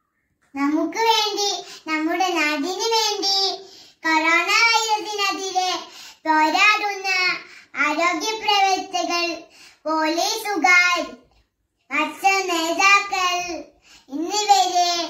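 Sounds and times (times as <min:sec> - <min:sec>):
small girl reciting: 0:00.4 - 0:15.0.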